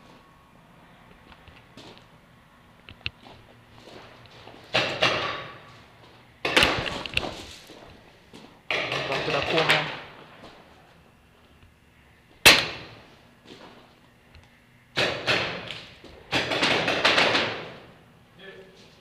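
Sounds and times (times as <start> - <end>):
single sharp shot ringing: 12.4 - 12.9.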